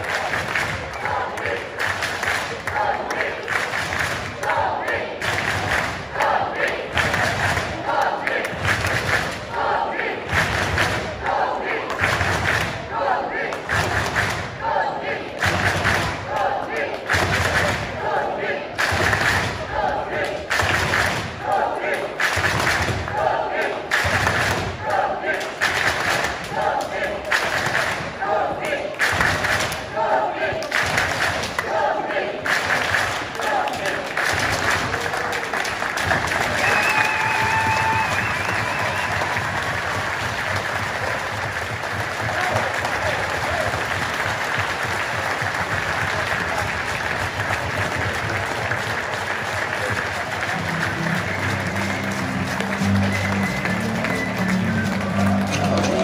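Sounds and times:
crowd chanting: 0:00.0 - 0:36.8, 0:49.8 - 0:56.0.

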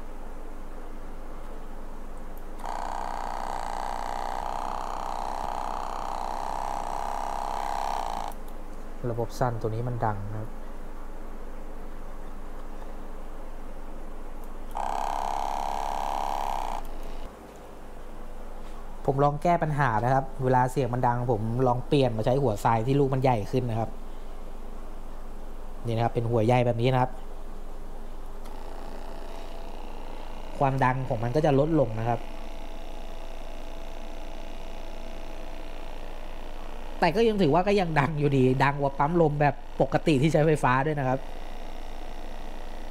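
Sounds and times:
flat-pitched buzz: 0:02.2 - 0:10.6, 0:14.1 - 0:17.4, 0:19.0 - 0:42.9
air pump humming: 0:02.4 - 0:08.6, 0:14.4 - 0:17.3, 0:25.9 - 0:42.9.

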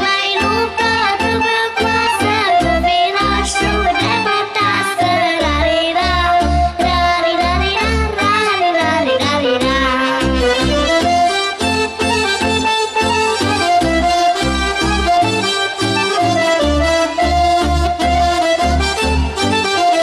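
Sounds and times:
girl singing: 0:00.0 - 0:10.4
accordion: 0:00.0 - 0:20.0.

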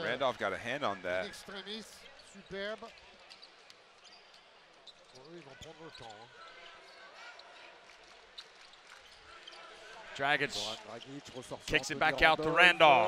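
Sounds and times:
faint arena crowd noise: 0:00.0 - 0:13.0.

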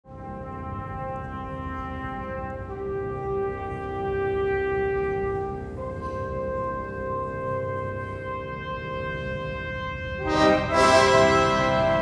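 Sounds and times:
brass instruments sustained chord: 0:00.1 - 0:12.0.

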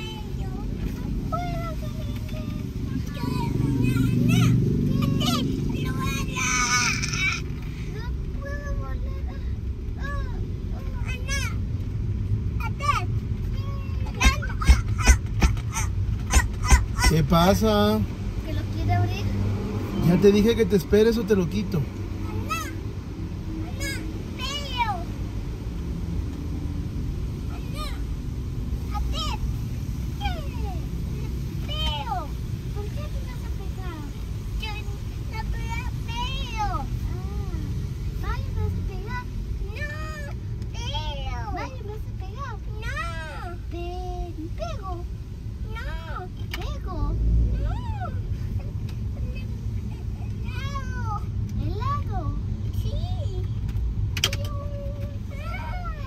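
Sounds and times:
car road noise rumble: 0:00.0 - 0:56.0.

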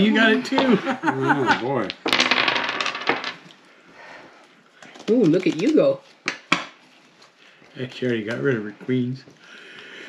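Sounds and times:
small hard objects clattering: 0:04.8 - 0:06.5.

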